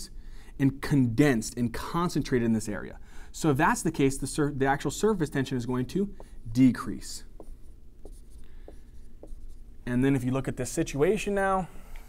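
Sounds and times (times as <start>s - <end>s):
man speaking: 0.6s - 7.4s
marker scratching on whiteboard: 5.2s - 9.7s
marker tapping on whiteboard: 6.2s - 6.7s, 7.3s - 9.6s.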